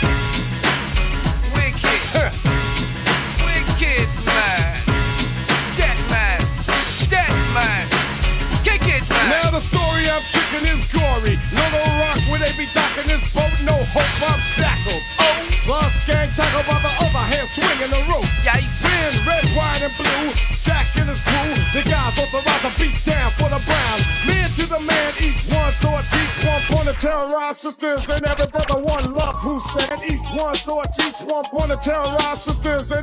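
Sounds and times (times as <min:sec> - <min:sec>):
deep bass and drums: 0:00.0 - 0:27.2, 0:28.0 - 0:33.0
rapping over a beat: 0:00.9 - 0:33.0.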